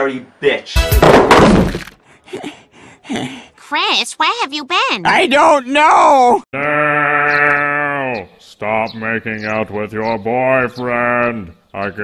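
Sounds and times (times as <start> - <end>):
heavy impact crash: 0.8 - 2.0.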